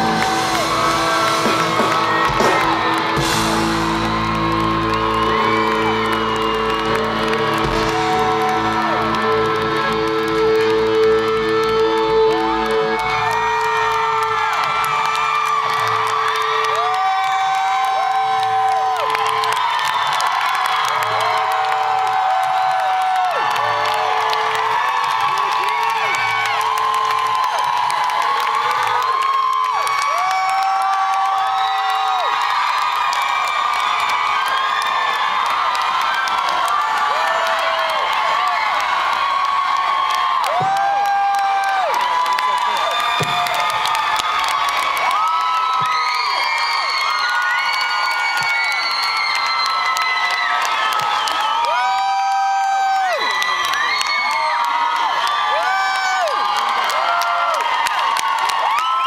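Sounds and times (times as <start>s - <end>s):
rock band sustained chord: 0.0s - 12.8s
crowd cheering and whooping: 0.0s - 59.0s.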